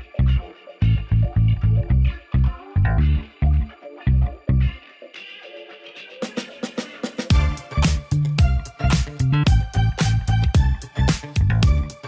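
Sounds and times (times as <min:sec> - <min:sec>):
funky bass guitar: 0:00.0 - 0:04.8, 0:07.3 - 0:12.0
guitar: 0:00.0 - 0:12.0.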